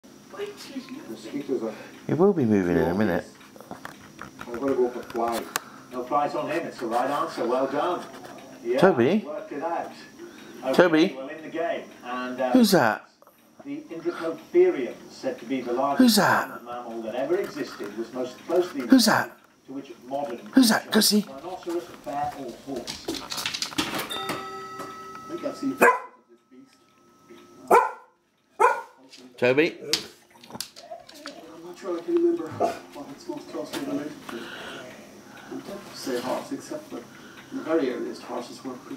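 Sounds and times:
person speaking: 15.9 - 19.4, 20.3 - 23.2
dog barking: 25.8 - 26.2, 27.7 - 29.0, 32.6 - 32.8.

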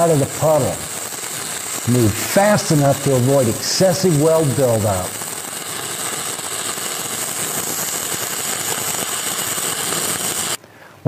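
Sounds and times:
welding arc crackling sizzle: 0.0 - 10.6.

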